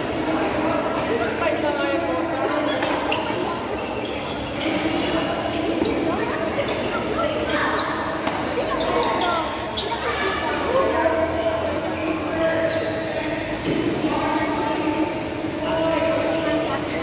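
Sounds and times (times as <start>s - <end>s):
voices chattering: 0.0s - 17.0s
sneakers squeaking on floor: 1.5s - 17.0s.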